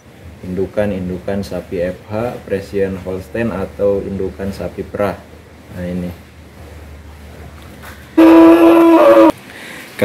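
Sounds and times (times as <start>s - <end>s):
cow mooing: 8.2s - 9.3s.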